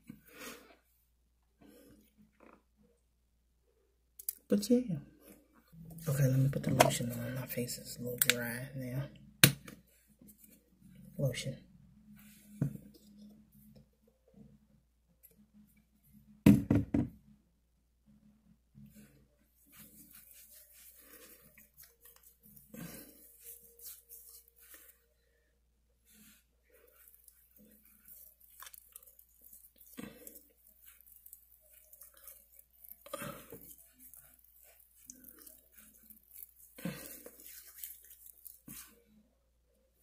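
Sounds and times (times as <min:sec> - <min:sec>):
knocks on plastic lotion bottle: 0:16.5 - 0:17.2
fingertips rubbing skin: 0:19.6 - 0:25.0, 0:26.1 - 0:39.0.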